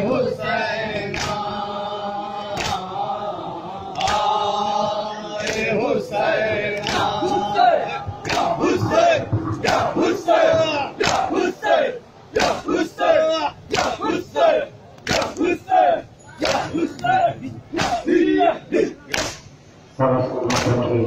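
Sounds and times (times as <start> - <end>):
men shouting a chant: 0.0 - 19.2
hands slapping chests: 1.1 - 1.4, 2.6 - 2.8, 8.2 - 8.6, 11.0 - 11.3, 17.8 - 18.0, 19.1 - 19.5.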